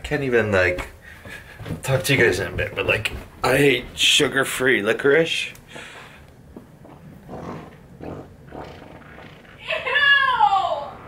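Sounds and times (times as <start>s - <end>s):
low rumbling fart: 6.6s - 9.8s.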